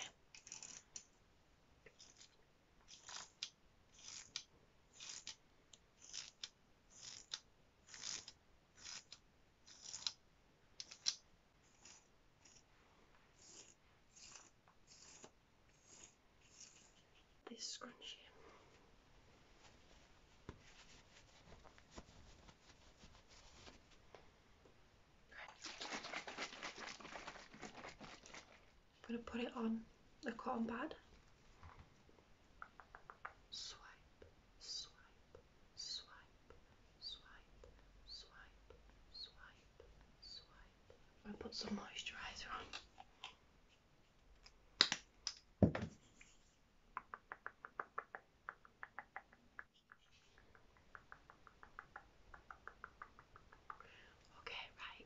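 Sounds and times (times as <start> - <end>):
crinkling and crackling in hands: 14.2 - 29.5.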